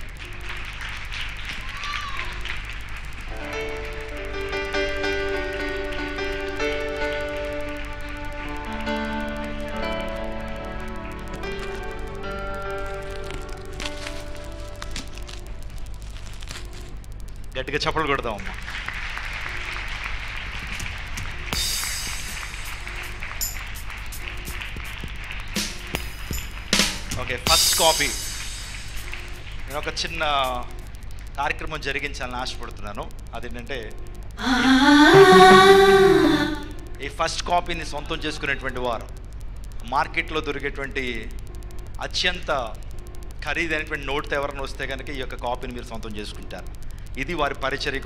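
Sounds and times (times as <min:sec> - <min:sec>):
crowd clapping steadily: 0:00.0 - 0:14.6, 0:18.1 - 0:31.3, 0:34.8 - 0:36.8
instrumental music with held notes: 0:03.3 - 0:15.4
wrapping paper crinkling and tearing: 0:11.4 - 0:17.5.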